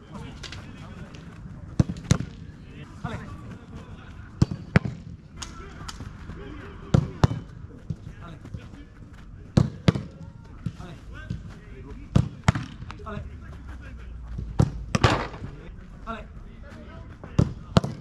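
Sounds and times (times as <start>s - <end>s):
faint voices: 0.0s - 18.0s.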